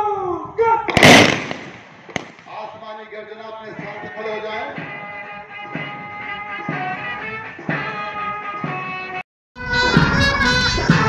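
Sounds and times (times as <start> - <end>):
rifle volley: 0.8 - 2.9
lone rifle crack: 0.9 - 2.6
band playing: 4.7 - 11.0.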